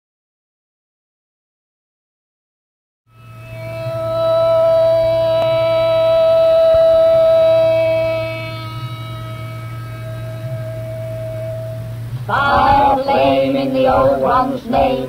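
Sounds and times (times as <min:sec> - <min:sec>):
held musical note: 0:03.1 - 0:15.0
low steady hum: 0:03.1 - 0:15.0.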